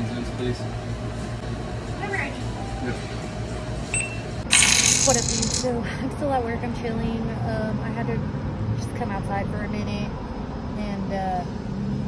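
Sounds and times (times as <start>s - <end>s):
coins clinking: 4.0s - 5.7s.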